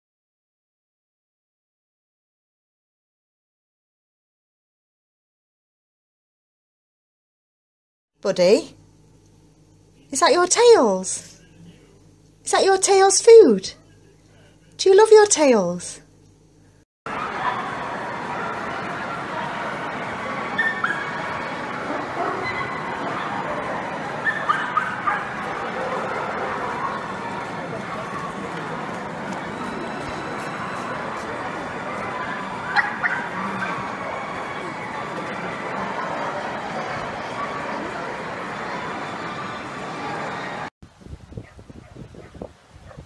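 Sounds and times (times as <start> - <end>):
murmur of crowd in hall: 17.1 - 40.7
small dogs yipping and barking: 20.5 - 34.4, 41.4 - 43.0
dog yipping: 20.6 - 21.2, 24.2 - 25.9, 32.2 - 33.8.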